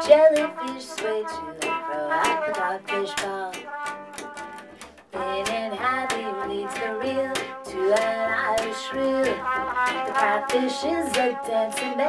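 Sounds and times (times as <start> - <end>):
electric guitar: 0.0 - 12.0
trumpet melody: 0.0 - 12.0.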